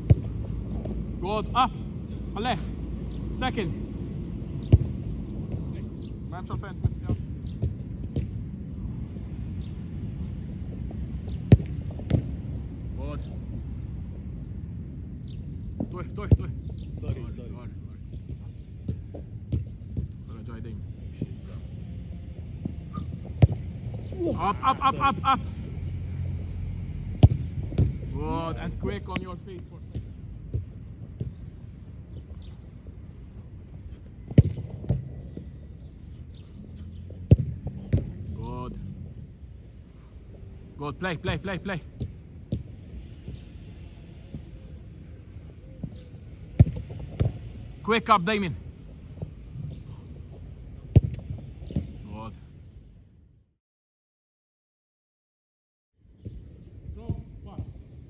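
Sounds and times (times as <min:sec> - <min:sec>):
football kicked sharp crack: 0:00.0 - 0:01.0, 0:04.6 - 0:05.8, 0:06.8 - 0:08.4, 0:11.3 - 0:12.4, 0:22.9 - 0:24.2, 0:27.2 - 0:28.1, 0:34.2 - 0:35.4, 0:37.3 - 0:38.2, 0:45.8 - 0:47.5, 0:50.9 - 0:52.0
steady low rumble: 0:00.0 - 0:45.6.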